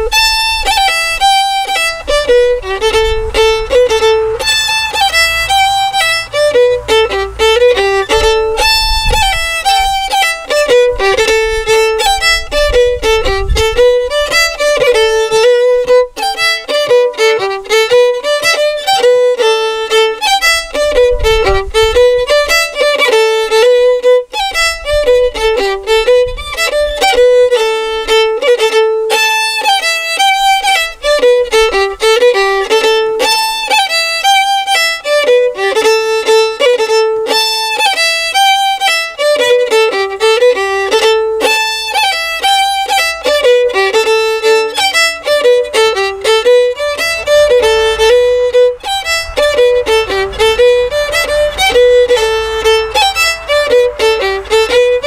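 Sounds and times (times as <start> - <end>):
solo fiddle melody: 0.0 - 55.0.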